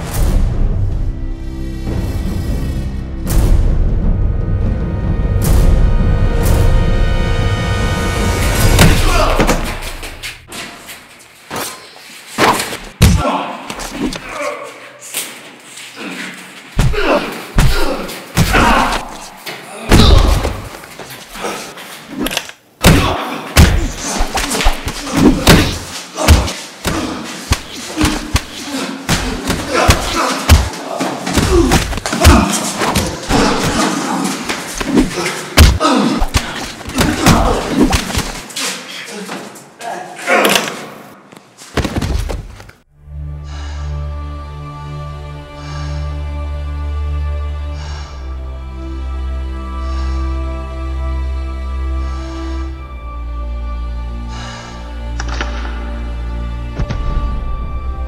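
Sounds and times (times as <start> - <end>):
dark music: 0.0 - 10.5, 42.9 - 58.0
fist fight thuds and slams: 8.7 - 9.8, 12.4 - 13.3, 16.8 - 18.9, 19.9 - 20.7, 22.8 - 30.8, 31.4 - 33.7, 35.0 - 38.4
heavy punch thuds: 24.7 - 30.7, 35.6 - 38.4.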